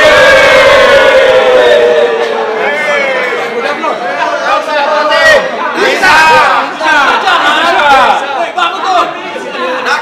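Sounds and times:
crowd cheering in unison: 0.0s - 3.6s.

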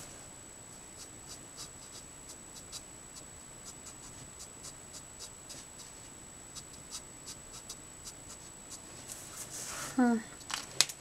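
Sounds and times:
marker nib scratching on card: 1.0s - 8.8s.

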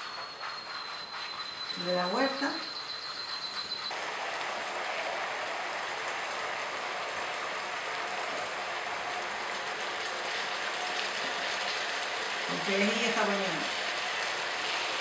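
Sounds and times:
food sizzling in hot oil: 0.0s - 15.0s.

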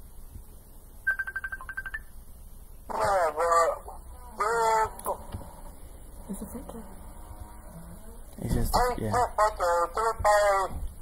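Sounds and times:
phone short high beeps: 1.1s - 2.1s.

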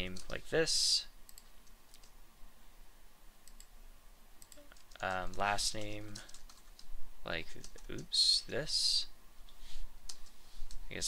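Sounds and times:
keyboard and mouse clicks: 1.3s - 2.1s, 3.4s - 3.7s, 4.4s - 6.9s.

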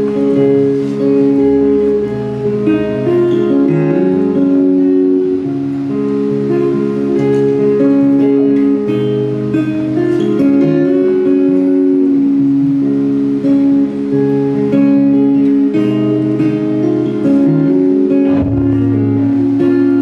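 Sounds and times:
electric guitar: 0.0s - 20.0s
strummed acoustic guitar: 0.0s - 20.0s
upright bass: 18.1s - 20.0s.

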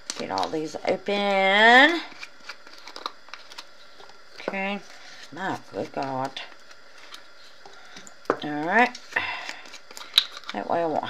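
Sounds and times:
plastic jar caps unscrewing: 2.1s - 4.6s, 5.2s - 10.6s.

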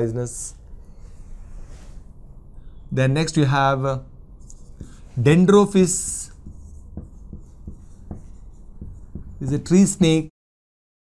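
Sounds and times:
marker writing on whiteboard: 4.4s - 10.2s.

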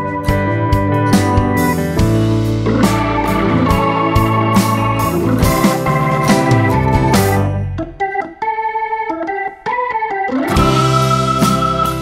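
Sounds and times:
electronic organ melody: 0.0s - 12.0s.

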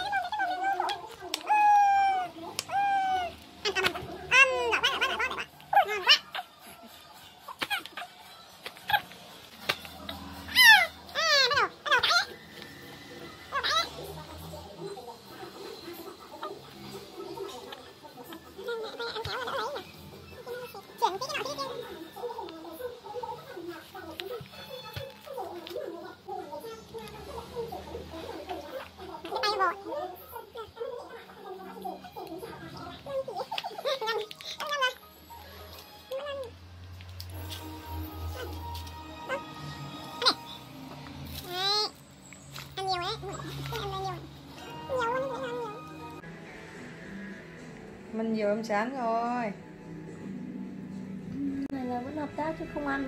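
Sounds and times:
baby squealing: 0.0s - 6.6s, 10.4s - 12.4s.

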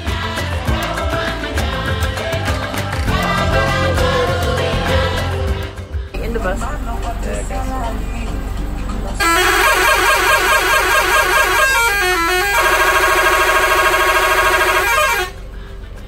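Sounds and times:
bus horn: 9.2s - 15.5s.

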